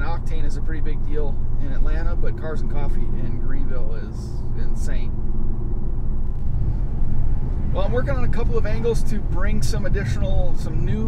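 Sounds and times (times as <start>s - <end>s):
low engine drone: 0.0s - 11.0s
road rumble: 0.0s - 11.0s.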